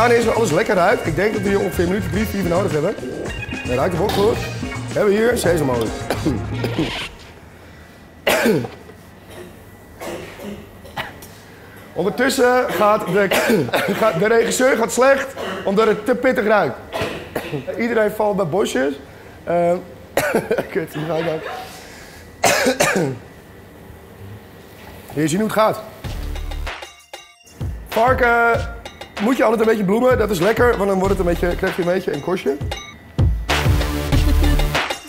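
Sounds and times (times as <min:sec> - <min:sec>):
person coughing: 0:06.1 - 0:07.1, 0:08.2 - 0:11.3, 0:12.6 - 0:15.8, 0:16.9 - 0:17.8, 0:20.2 - 0:21.6, 0:22.4 - 0:23.2.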